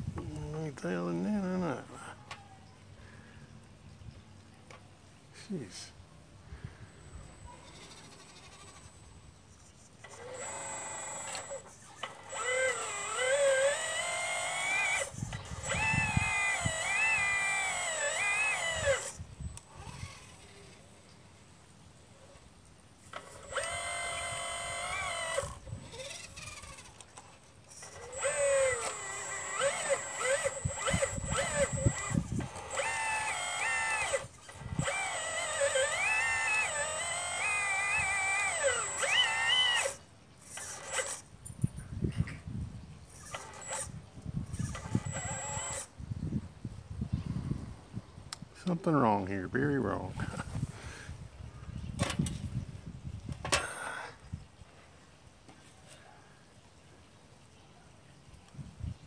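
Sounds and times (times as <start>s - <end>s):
hydraulic pump motor whining: 7.1s - 9.2s, 10.0s - 20.5s, 23.0s - 41.3s, 43.1s - 45.9s.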